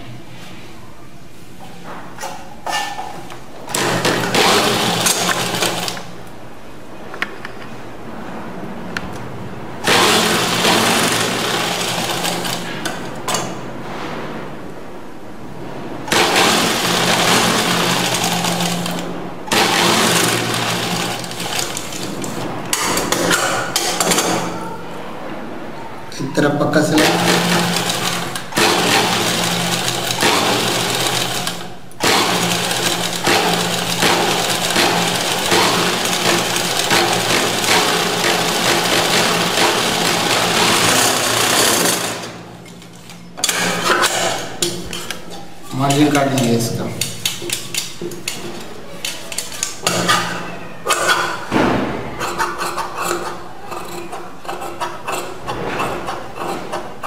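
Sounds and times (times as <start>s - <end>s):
sewing machine stitching: 3.7s - 6.1s, 9.8s - 13.4s, 16.1s - 23.5s, 27.0s - 42.4s.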